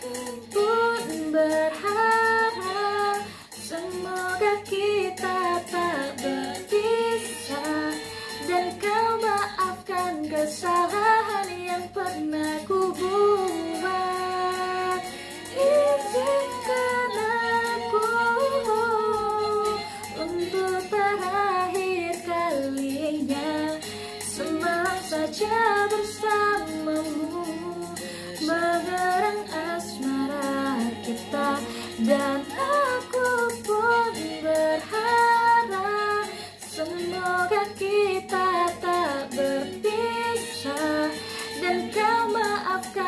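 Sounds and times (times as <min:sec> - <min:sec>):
woman singing pop ballad: 0:00.0 - 0:43.0.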